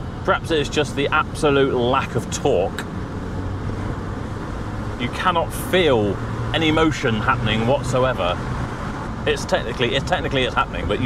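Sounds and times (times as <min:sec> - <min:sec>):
car engine and road noise: 0:00.0 - 0:11.0.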